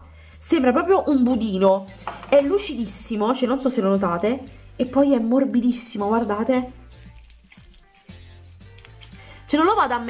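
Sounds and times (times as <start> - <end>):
background music: 0.0 - 10.0
slime squishing: 6.2 - 9.3.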